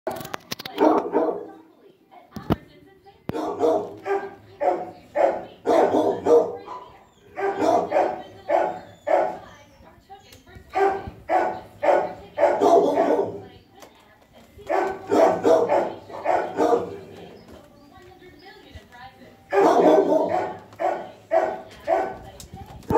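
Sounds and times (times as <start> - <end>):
dogs barking: 0.1 - 1.7, 3.3 - 9.8, 10.6 - 13.6, 14.6 - 17.7, 19.5 - 22.9.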